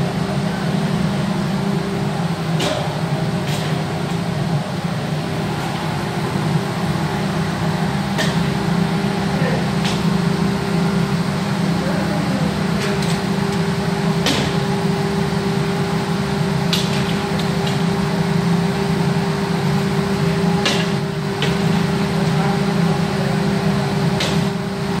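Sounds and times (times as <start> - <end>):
glass cutting machine humming: 0.0 - 25.0.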